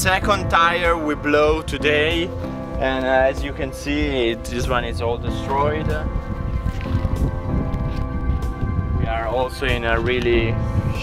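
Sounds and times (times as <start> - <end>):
background music with held tones: 0.0 - 11.0
wind rumble on microphone: 0.0 - 11.0.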